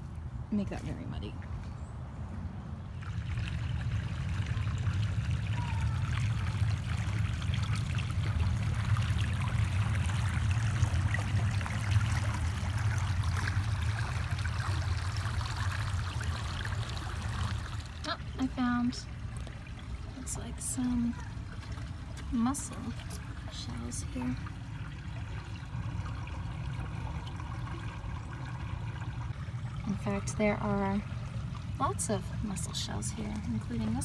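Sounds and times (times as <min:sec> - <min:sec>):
low rumble: 0:02.2 - 0:18.3
creek water trickling over rocks: 0:02.8 - 0:34.0.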